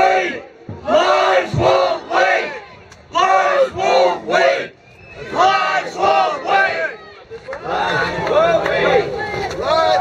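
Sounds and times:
crowd shouting along: 0:00.0 - 0:10.0.

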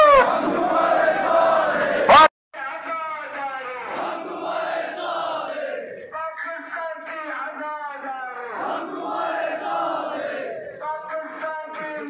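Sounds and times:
crowd shouting slogan in unison: 0:00.0 - 0:02.3, 0:03.8 - 0:06.0, 0:08.5 - 0:10.8.

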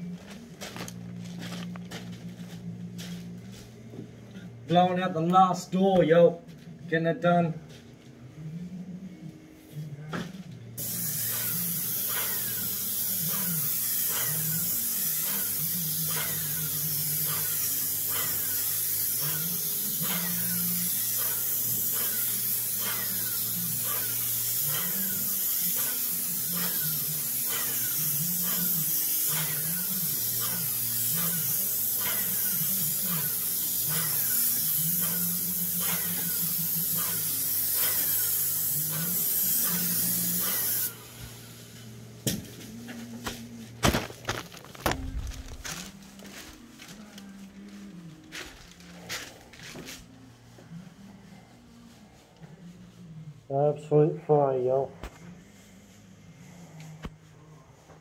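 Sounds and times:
paint spray gun hissing: 0:10.8 - 0:42.0.

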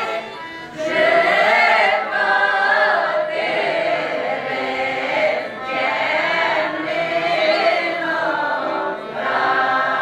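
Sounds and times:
women's choir singing folk song: 0:00.0 - 0:10.0.

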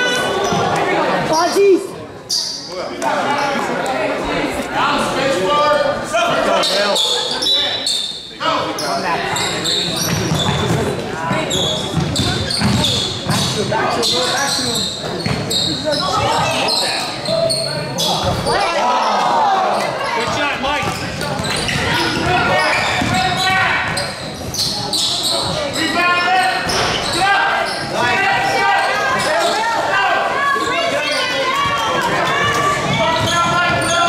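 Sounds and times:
basketball bouncing on hardwood: 0:11.9 - 0:13.6, 0:23.0 - 0:23.2.

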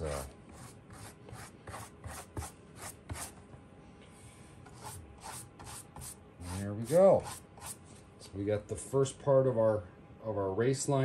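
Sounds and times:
paintbrush scrubbing rough surface: 0:00.0 - 0:03.3, 0:04.7 - 0:07.8.

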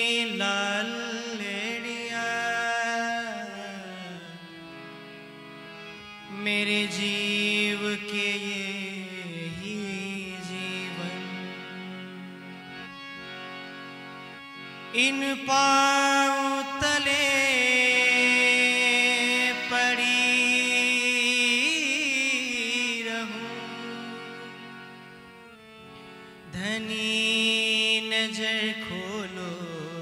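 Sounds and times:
man singing: 0:00.0 - 0:04.8, 0:06.2 - 0:12.9, 0:14.9 - 0:25.0, 0:26.4 - 0:30.0
harmonium chord: 0:00.0 - 0:30.0.

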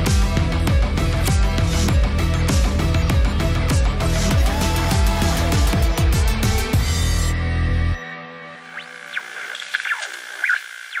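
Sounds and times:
electronic glitch static: 0:08.5 - 0:11.0.

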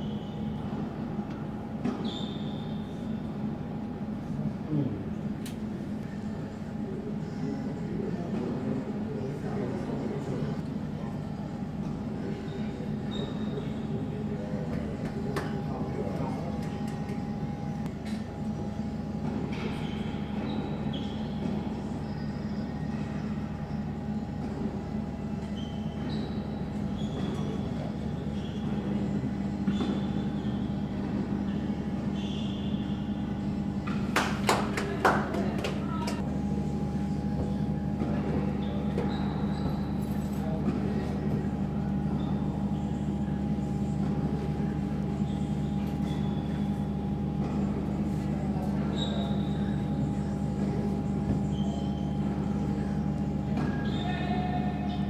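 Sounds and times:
low machine hum: 0:00.0 - 0:55.0.

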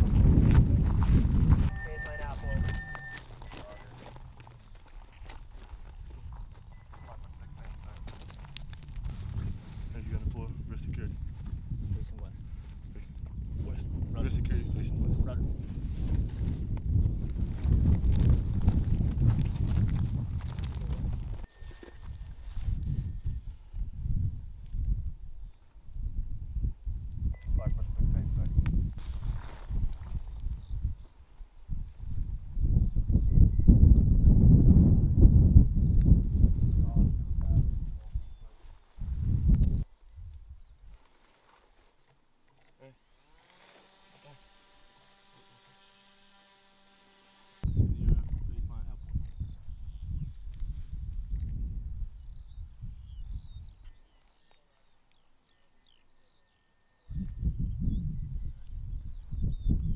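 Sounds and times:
wind buffeting microphone: 0:00.0 - 0:41.0, 0:47.6 - 0:54.0, 0:57.0 - 0:59.9.

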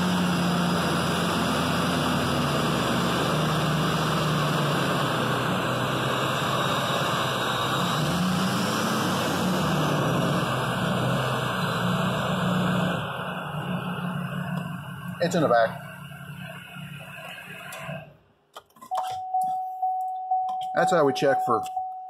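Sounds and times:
truck engine and drivetrain hum: 0:00.0 - 0:22.0.

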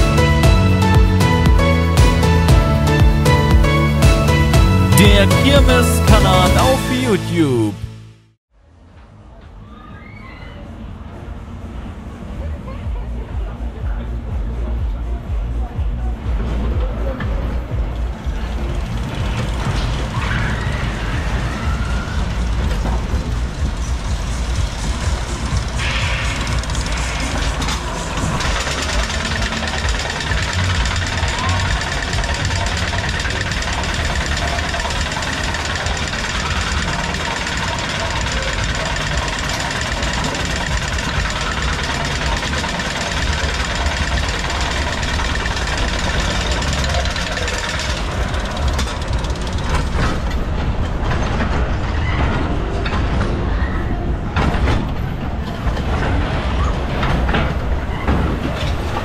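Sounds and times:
funfair music: 0:00.0 - 0:08.2, 0:13.1 - 0:59.0
roller coaster rumbling on track: 0:09.2 - 0:59.0
lift hill mechanical noise: 0:17.8 - 0:59.0.

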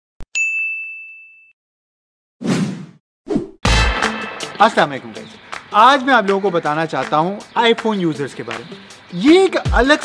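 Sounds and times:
bright bell-like ding: 0:00.4 - 0:01.6.

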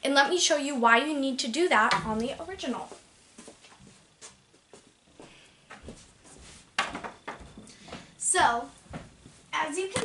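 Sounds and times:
wooden pieces tapping and rustling: 0:06.8 - 0:08.0.

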